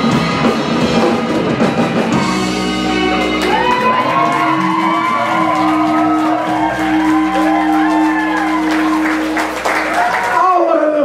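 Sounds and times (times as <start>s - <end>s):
rock band holding a chord: 0.0s - 10.4s
audience cheering and shouting: 2.4s - 11.0s.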